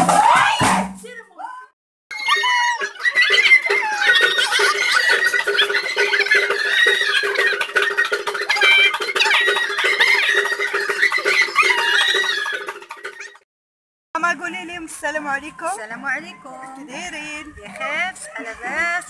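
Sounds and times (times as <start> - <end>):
women ululating: 2.1 - 12.9
rhythmic handclapping: 2.3 - 13.4
women's voices: 14.2 - 19.0.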